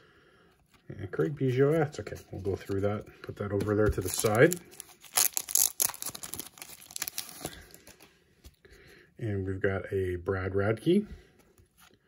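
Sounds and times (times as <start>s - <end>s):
cards rustling and clicking: 1.5s - 8.6s.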